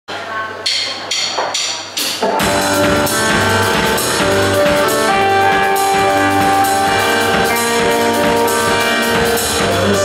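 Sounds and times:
low amplifier hum: 2.4 - 10.0.

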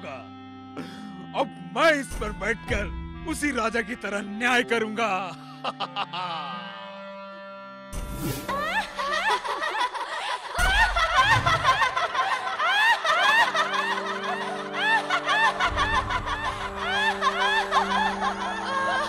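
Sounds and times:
background music: 0.0 - 19.0
women laughing: 5.6 - 6.8, 8.4 - 19.0.

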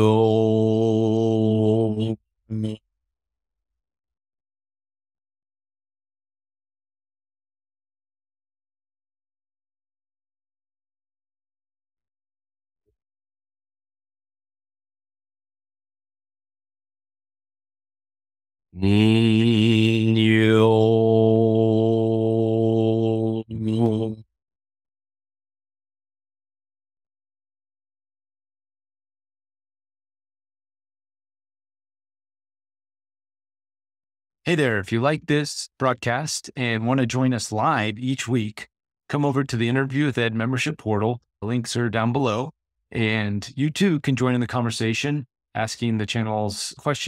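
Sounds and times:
man chanting low held tone: 0.0 - 2.8, 18.8 - 24.2
man holding a low vocal note: 0.0 - 2.8, 18.8 - 24.2.

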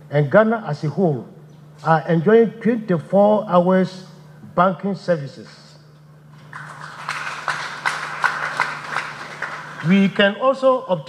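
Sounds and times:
audience applause: 6.4 - 10.0.

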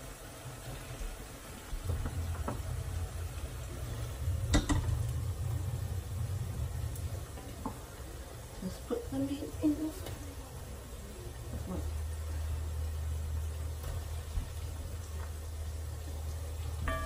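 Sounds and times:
low rumble: 1.7 - 17.0.

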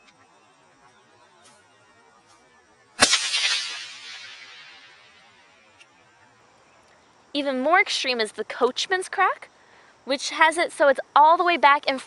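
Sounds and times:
whip crack: 3.0 - 5.4.

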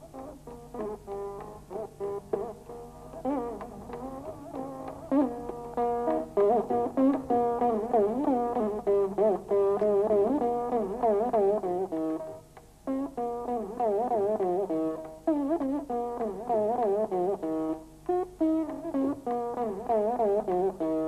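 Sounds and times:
veena plucked with pitch slides: 0.0 - 21.0.

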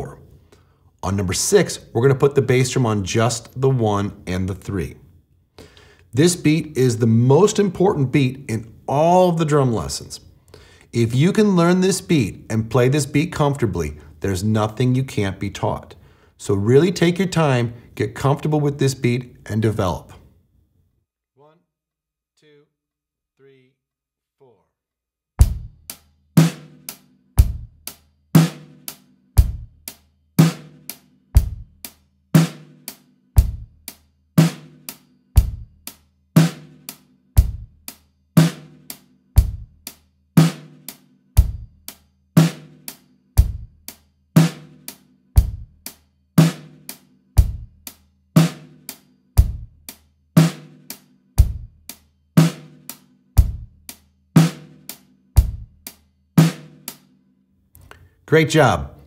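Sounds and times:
bass drum: 25.4 - 28.8, 29.4 - 32.8, 33.4 - 56.9
closed hi-hat: 25.4 - 58.0
snare drum: 28.4 - 29.6, 30.4 - 31.6, 32.4 - 33.6, 38.4 - 39.6, 40.4 - 41.7, 42.4 - 43.7, 44.4 - 45.7, 46.4 - 47.7, 48.4 - 49.7, 50.4 - 51.7, 52.4 - 57.1.

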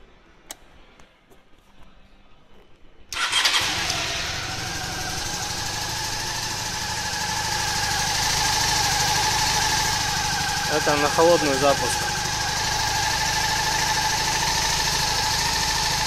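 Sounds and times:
motorcycle engine starting and idling: 3.1 - 16.0.

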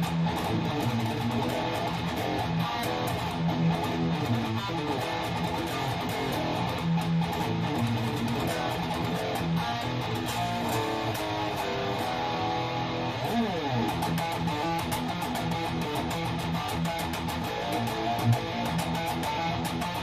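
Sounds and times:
electric guitar riffing through amp: 0.0 - 20.0.

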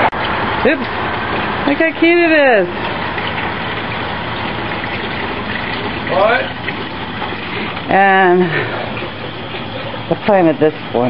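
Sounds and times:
fountain water splashing into basin: 0.0 - 11.0.

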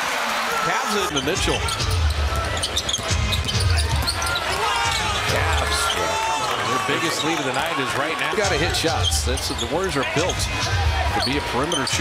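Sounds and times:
crowd noise: 0.0 - 12.0
sneaker squeaks: 1.1 - 7.5, 11.2 - 12.0.

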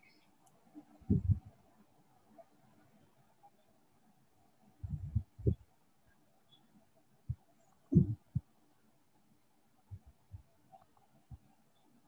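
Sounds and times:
faint steady hum: 0.0 - 12.0
dull low thumps: 1.1 - 1.4, 4.8 - 5.6, 7.9 - 8.4.

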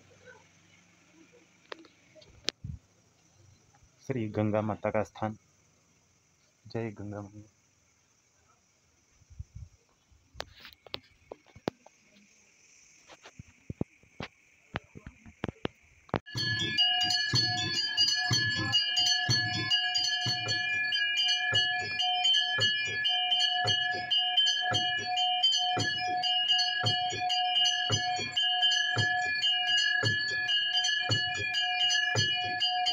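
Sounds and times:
bells ringing rapidly: 16.3 - 32.9.

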